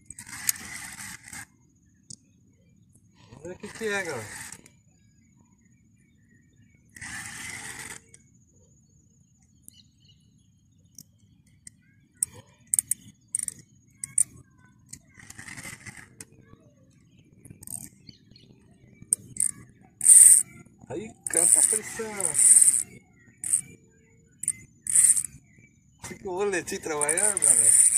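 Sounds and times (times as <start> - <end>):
fishing reel clicks: 0.0 - 1.4, 12.2 - 14.3, 17.6 - 17.9, 19.1 - 20.5, 21.2 - 23.7, 24.4 - 25.4, 26.9 - 27.9.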